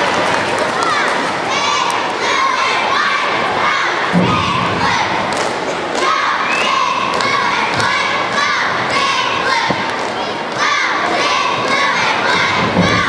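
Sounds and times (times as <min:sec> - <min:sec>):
girls shouting and cheering: 0:06.0 - 0:13.0.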